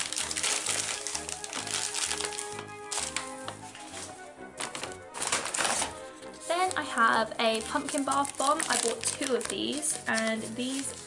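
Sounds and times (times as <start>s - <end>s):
paper bag rustling: 0.0s - 11.0s.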